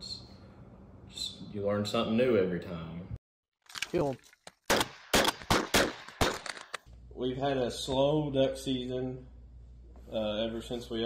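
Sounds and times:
shotguns firing: 4.7s - 6.8s.

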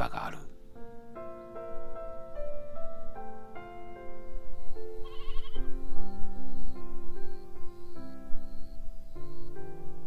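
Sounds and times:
background music: 0.0s - 10.0s
sheep bleating: 5.0s - 5.6s.

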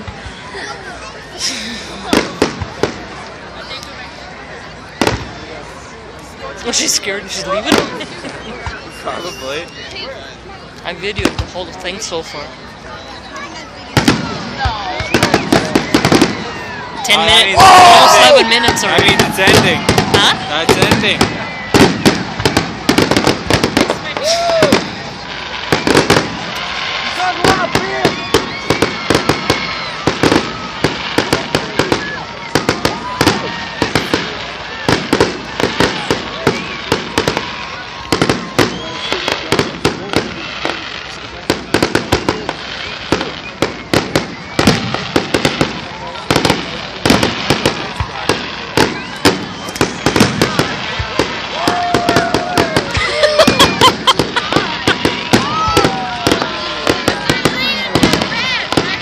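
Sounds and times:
fireworks bangs and crackles: 0.0s - 59.0s
fireworks whistling: 6.6s - 10.1s, 13.9s - 59.0s.

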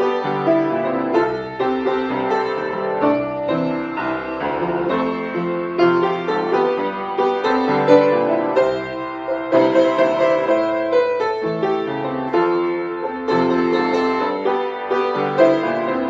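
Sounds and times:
solo piano: 0.0s - 16.0s.

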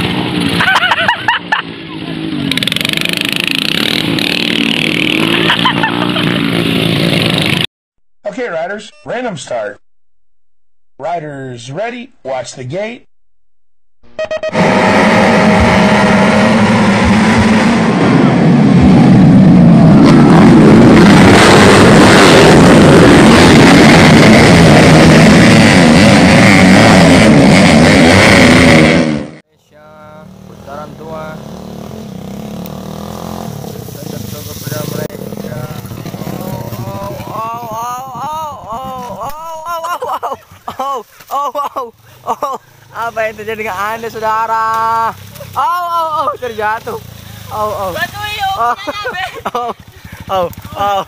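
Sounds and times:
motorcycles accelerating hard: 0.0s - 7.7s, 14.6s - 29.4s, 30.0s - 41.4s, 42.0s - 51.0s
people talking: 8.3s - 9.8s, 11.0s - 13.1s, 29.6s - 31.4s, 34.0s - 49.6s, 50.3s - 51.0s.

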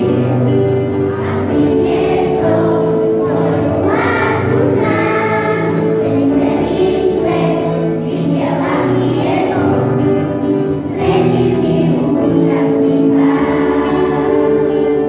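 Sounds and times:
acoustic guitar: 0.0s - 15.0s
children's choir singing: 0.0s - 15.0s.

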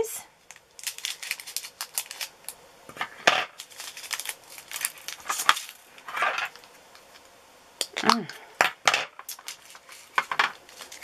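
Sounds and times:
plastic containers clicking and clattering: 8.1s - 11.0s.

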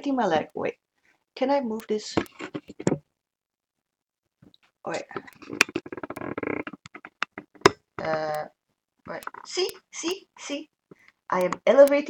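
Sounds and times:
sharp knocks and clicks: 5.2s - 8.4s.

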